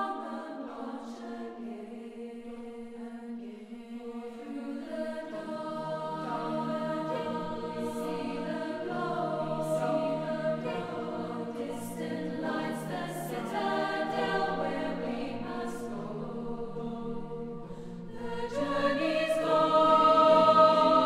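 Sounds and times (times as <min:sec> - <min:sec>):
choir singing: 0:00.0 - 0:21.0.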